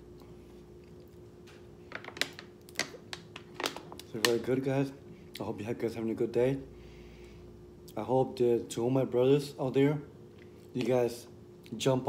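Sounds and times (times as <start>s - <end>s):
plastic bottle crackling: 1.9s - 4.5s.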